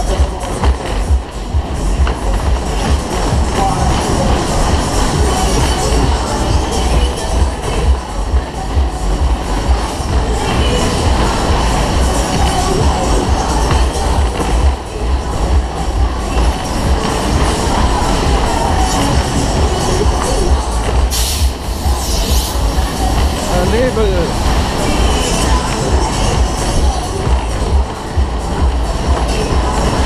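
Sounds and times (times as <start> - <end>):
loud fairground music: 0.0 - 30.0
ride cars rumbling on track: 0.0 - 30.0
wind rumble on microphone: 0.0 - 30.0.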